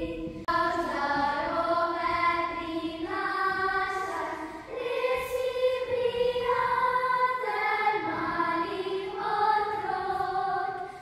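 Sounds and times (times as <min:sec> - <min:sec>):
children singing folk song: 0:00.0 - 0:11.0.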